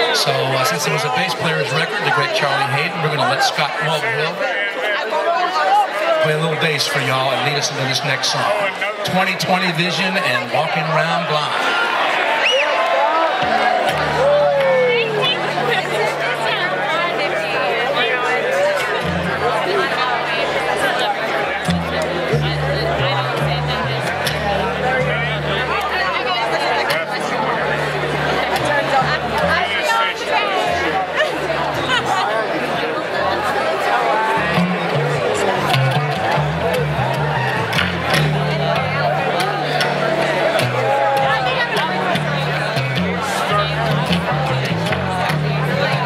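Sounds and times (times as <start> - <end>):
audience chatter: 0.0 - 46.0
double bass playing low notes: 13.4 - 17.0, 18.8 - 20.7, 21.6 - 29.8, 34.3 - 46.0.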